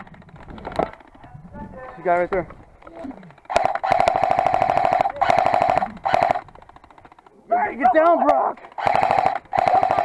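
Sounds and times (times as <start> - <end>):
airsoft gun firing bursts: 3.3 - 7.4, 8.7 - 10.0.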